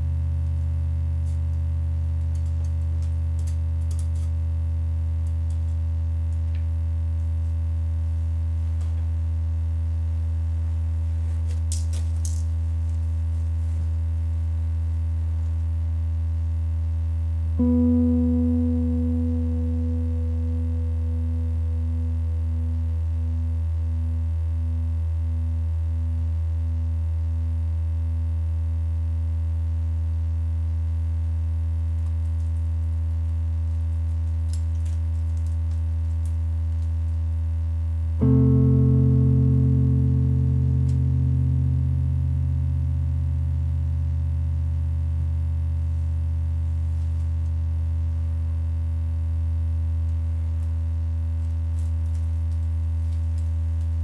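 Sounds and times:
steady low drone: 17.4 - 26.0, 38.2 - 46.1
wavering pitched note: 17.6 - 23.4, 38.2 - 43.5.

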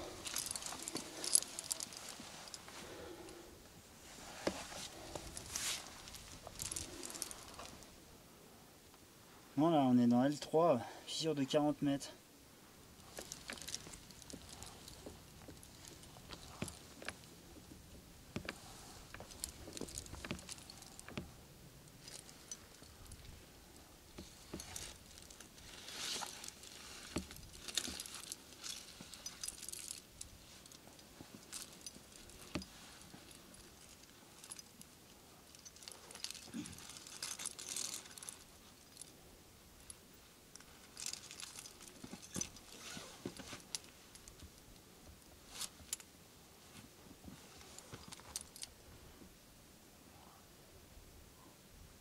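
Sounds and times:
metal climbing gear clinking: 0.0 - 3.4, 4.4 - 8.0, 13.0 - 39.2, 39.8 - 46.1, 47.6 - 48.7.

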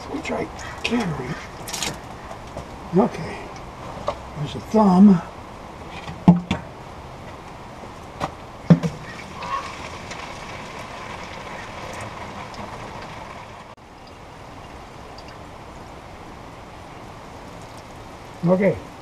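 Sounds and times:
sharp knocks: 8.2 - 9.2.

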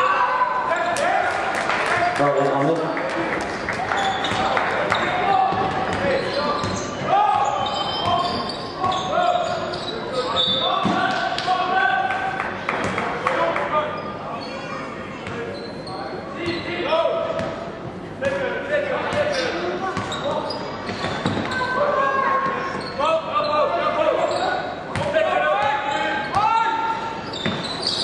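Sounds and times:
basketball bouncing on court: 4.2 - 9.0, 20.0 - 20.2, 24.9 - 25.2.

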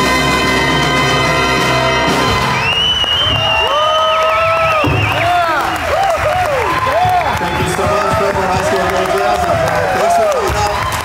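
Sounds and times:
big band music: 0.0 - 3.6
audience applauding and cheering: 0.0 - 11.0
long shrill warbling whistle: 2.1 - 5.9.

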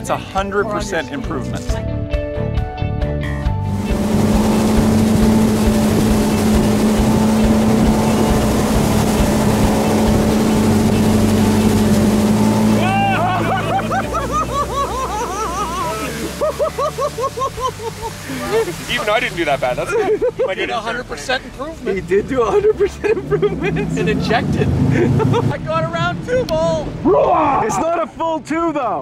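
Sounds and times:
rushing water and spray: 3.6 - 27.1
boat engine drone: 3.6 - 27.5
man laughing: 12.8 - 19.1, 19.7 - 20.7, 22.3 - 25.7.

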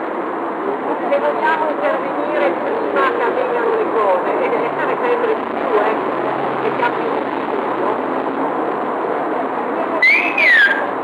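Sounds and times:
street background noise: 0.0 - 11.0
high whistling tone: 10.0 - 10.9.

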